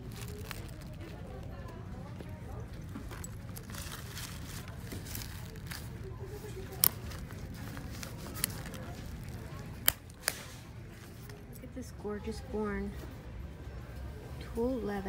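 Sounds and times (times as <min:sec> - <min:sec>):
handling rustle: 0:00.0 - 0:11.5
store background hum: 0:00.0 - 0:15.0.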